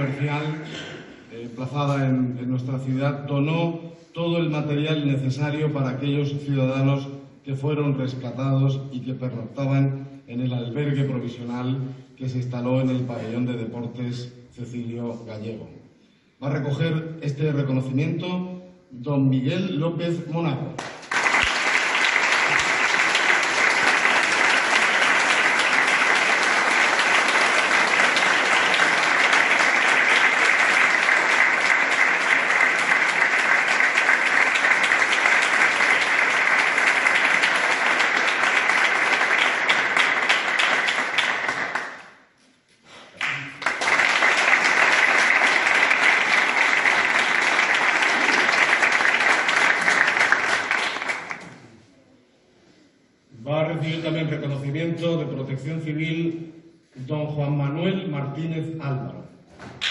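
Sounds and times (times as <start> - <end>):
audience applauding: 20.8 - 42.1, 43.2 - 51.6.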